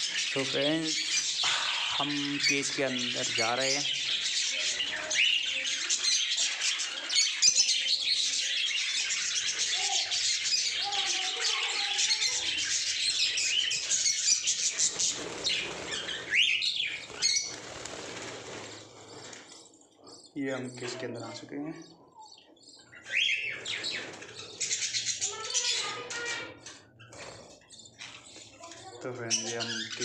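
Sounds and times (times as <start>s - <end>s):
budgerigars chattering and chirping: 0.0s - 30.0s.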